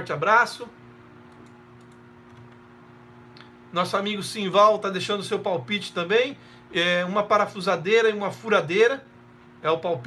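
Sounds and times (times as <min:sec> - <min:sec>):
low steady hum: 0:00.0 - 0:10.0
computer keys clicking: 0:01.3 - 0:02.6.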